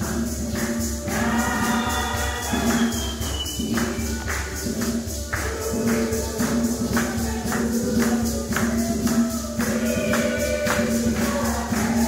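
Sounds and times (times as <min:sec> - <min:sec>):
choir singing: 0:00.0 - 0:12.0
jingling beat: 0:00.0 - 0:12.0.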